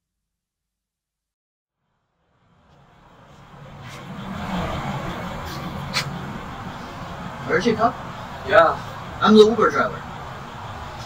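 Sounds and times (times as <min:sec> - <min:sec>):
low vehicle rumble: 0:02.2 - 0:11.0.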